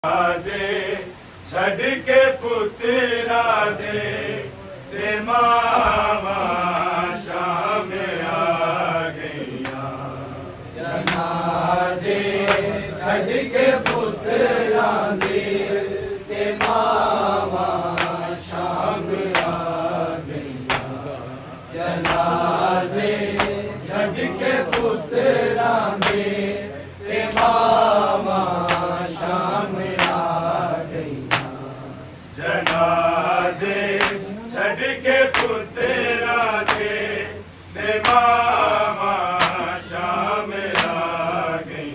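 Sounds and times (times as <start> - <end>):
men chanting in unison: 0.0 - 41.9
sharp slap keeping beat: 10.9 - 12.8, 13.7 - 14.2, 14.8 - 15.5, 16.4 - 19.8, 20.6 - 21.2, 21.9 - 23.8, 24.6 - 25.1, 25.8 - 26.5, 27.2 - 30.6, 31.2 - 31.7, 32.4 - 34.3, 35.3 - 35.6, 36.6 - 37.0, 37.9 - 40.0, 40.6 - 41.2.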